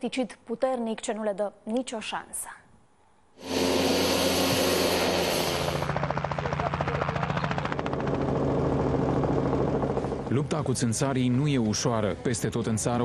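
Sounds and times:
low engine drone: 0:03.4 - 0:06.9
helicopter rotor blades beating: 0:03.4 - 0:12.2.

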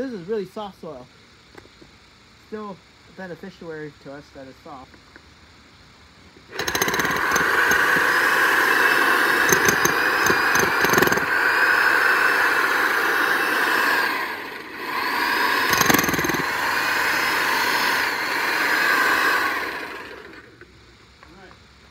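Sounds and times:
electric jackhammer hammering soil: 0:06.5 - 0:20.5.

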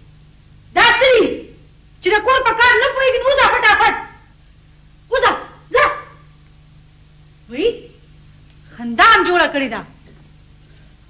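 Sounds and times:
dog barking: 0:05.7 - 0:06.2.

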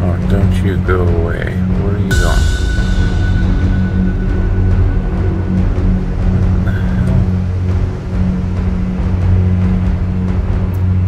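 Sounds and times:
ominous droning music: 0:00.0 - 0:11.0.

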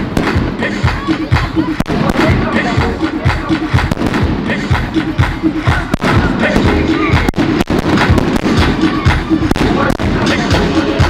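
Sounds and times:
sharp firework bangs: 0:00.0 - 0:00.7, 0:03.8 - 0:04.7, 0:05.9 - 0:10.5
fireworks launching: 0:00.0 - 0:11.0
music with steady beat: 0:00.0 - 0:11.0.

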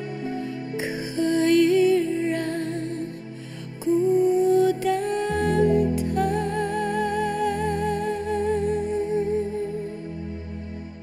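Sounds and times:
low sustained accompaniment chord: 0:00.0 - 0:11.0
woman singing long note: 0:03.9 - 0:09.9.

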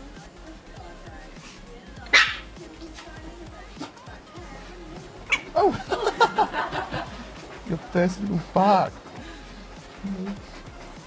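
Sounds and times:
background music: 0:00.0 - 0:11.0
dog bark: 0:02.1 - 0:02.6.

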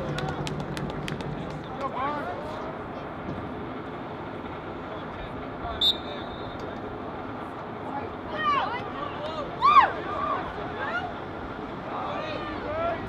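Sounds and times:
referee's whistle blast: 0:05.8 - 0:06.6.

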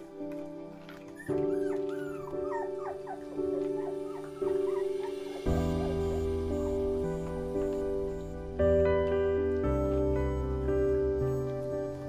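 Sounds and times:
background music: 0:00.0 - 0:12.0
puppy whimpering: 0:00.8 - 0:08.3, 0:10.3 - 0:12.0.

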